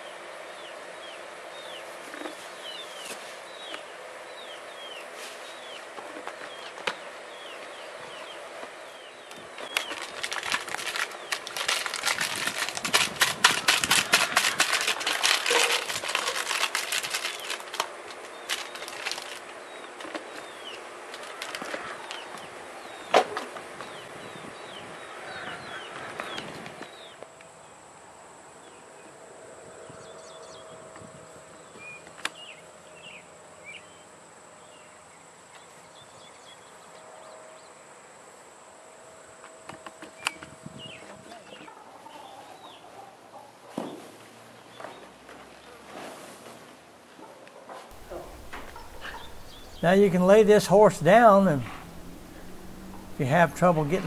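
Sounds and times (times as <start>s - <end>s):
plastic bag crinkling: 9.6s - 19.5s
steady high hum: 47.9s - 54.0s
bird chirps: 48.0s - 54.0s.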